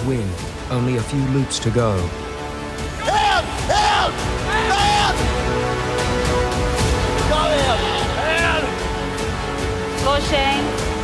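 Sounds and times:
background music: 0.0s - 11.0s
loud shouts: 2.9s - 5.4s, 7.2s - 8.8s.

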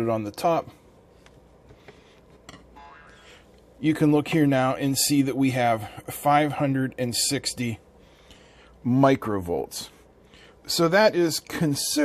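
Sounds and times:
man speaking: 0.0s - 0.8s, 3.8s - 7.8s, 8.8s - 10.0s, 10.7s - 12.0s
faint pitched tone: 2.8s - 3.4s.

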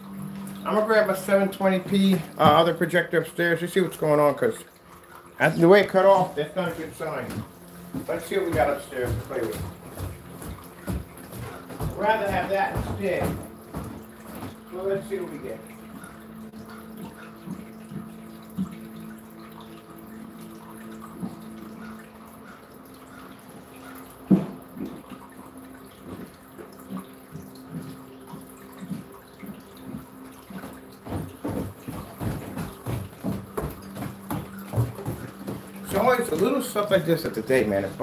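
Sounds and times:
footsteps thudding on stairs: 1.8s - 2.8s, 7.2s - 14.7s, 24.3s - 25.0s, 27.7s - 36.6s.

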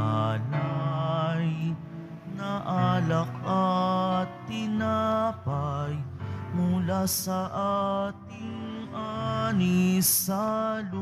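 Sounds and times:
voices singing a hymn: 0.0s - 11.0s.

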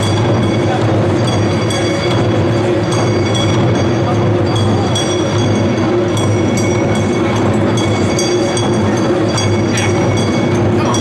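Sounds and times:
metallic ringing: 0.0s - 11.0s
taiko drums drumming: 0.0s - 11.0s.

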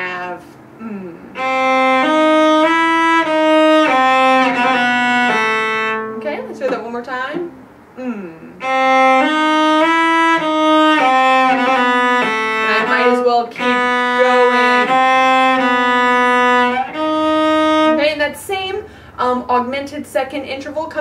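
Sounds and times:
cello bowed slowly: 0.0s - 18.3s.

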